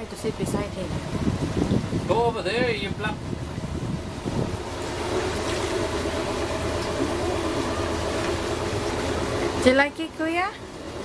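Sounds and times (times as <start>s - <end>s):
steady low hum: 0.0s - 11.0s
wind and water rushing: 0.0s - 11.0s.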